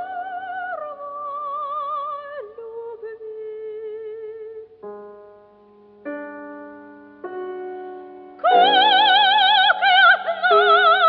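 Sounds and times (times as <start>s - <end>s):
piano chords ringing: 4.8s - 11.0s.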